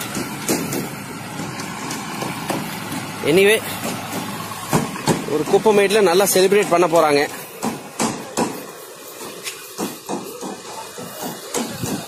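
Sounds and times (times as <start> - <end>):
motor vehicle engine running: 0.0 - 12.0.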